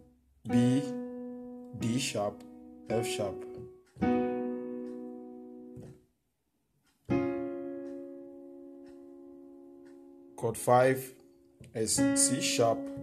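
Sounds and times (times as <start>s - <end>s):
electronic piano chord: 0.0s - 6.0s, 7.1s - 13.0s.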